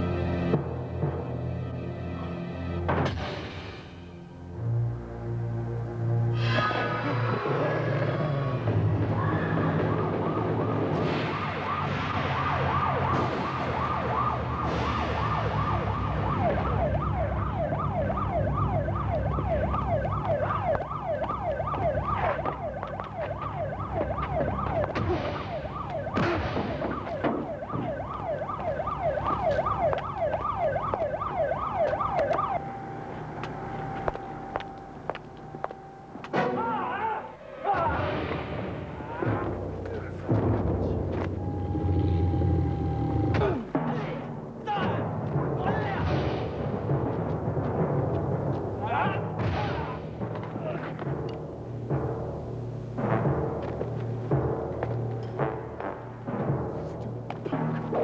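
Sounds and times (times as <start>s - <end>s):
police siren yelping: 6.4s - 36.2s, 41.2s - 43.7s.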